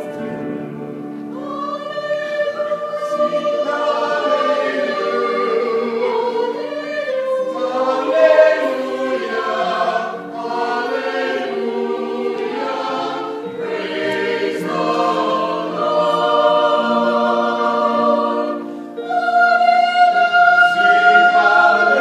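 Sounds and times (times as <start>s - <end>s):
choir singing in harmony: 0.0s - 22.0s.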